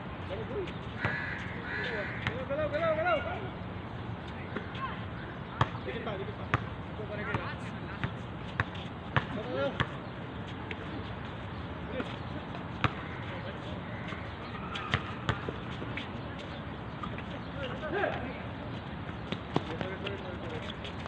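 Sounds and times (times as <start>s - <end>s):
basketball bouncing on hard court: 8.0s - 9.9s
distant shouts of players: 12.9s - 15.6s.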